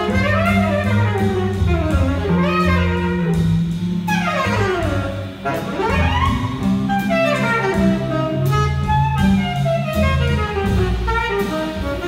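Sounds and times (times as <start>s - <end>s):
drums: 0.0s - 12.0s
saxophone: 0.0s - 12.0s
upright bass: 0.0s - 12.0s.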